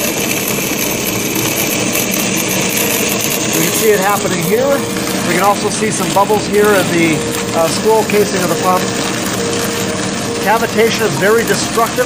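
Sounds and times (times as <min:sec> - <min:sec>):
pump cavitating with gritty rattle: 0:00.0 - 0:12.0.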